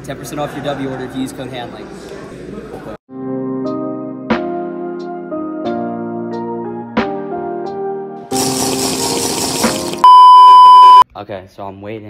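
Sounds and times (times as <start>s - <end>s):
soft keyboard music: 3.1s - 10.0s
loud steady beep: 10.0s - 11.0s.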